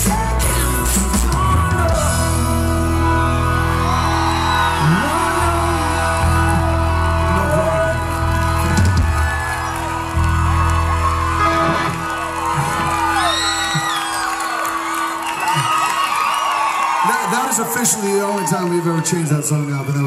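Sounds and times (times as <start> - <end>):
heavy bass: 0.0 - 13.9
live reggae band playing: 0.0 - 16.0
crowd cheering and whooping: 0.0 - 20.0.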